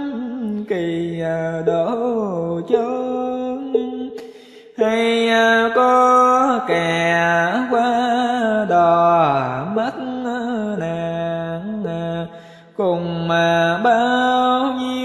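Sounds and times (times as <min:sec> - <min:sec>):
person chanting melodically: 0:00.0 - 0:15.0.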